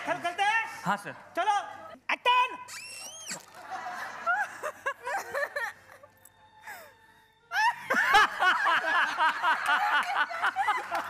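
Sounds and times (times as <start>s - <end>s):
high falsetto squeal: 2.6s - 3.5s.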